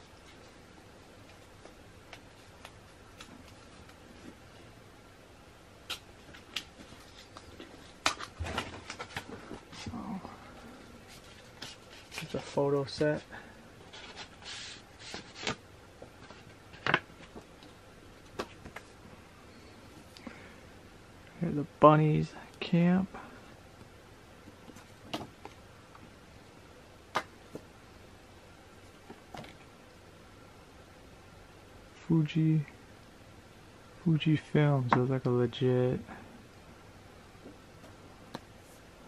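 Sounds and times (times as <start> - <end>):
photo prints shuffled by hand: 10.9 - 19.0.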